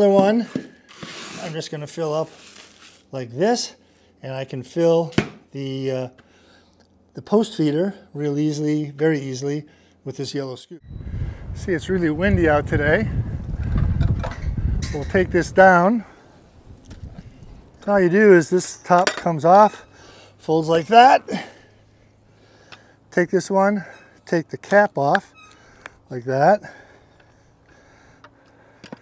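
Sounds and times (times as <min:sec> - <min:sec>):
wind buffeting microphone: 0:10.8 - 0:17.8.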